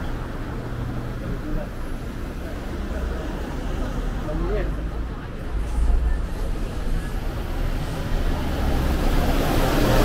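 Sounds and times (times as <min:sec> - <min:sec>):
bus engine rumble: 0:00.0 - 0:10.0
street traffic: 0:00.0 - 0:10.0.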